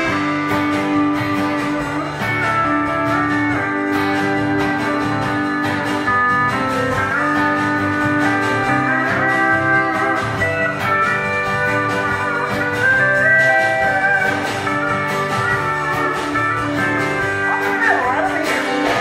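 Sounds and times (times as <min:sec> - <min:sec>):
country band backing: 0:00.0 - 0:19.0
pedal steel guitar sliding chords: 0:00.0 - 0:19.0.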